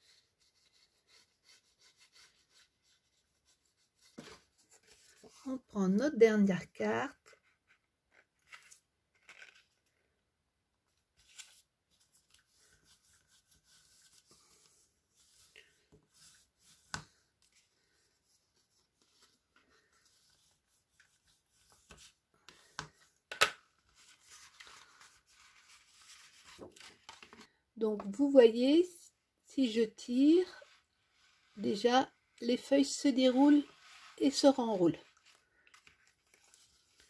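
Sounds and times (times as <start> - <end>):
paper rustling and sliding: 23.8 - 27.5, 33.5 - 37.0.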